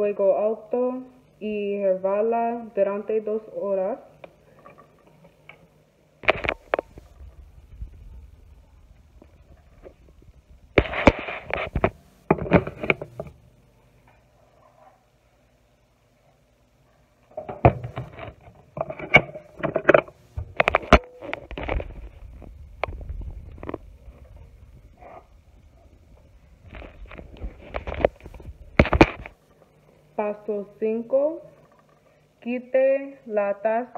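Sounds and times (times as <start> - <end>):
faint low rumble: 6.2 - 12.3, 20.3 - 32.5.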